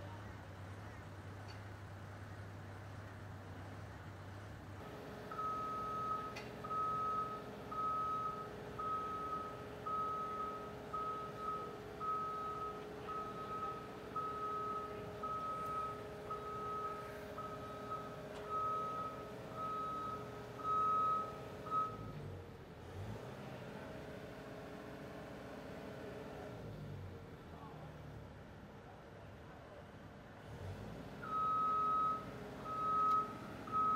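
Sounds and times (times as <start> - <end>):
engine humming: 0.0 - 28.7, 30.3 - 33.9
reversing alarm beeping: 5.3 - 22.2, 31.2 - 33.9.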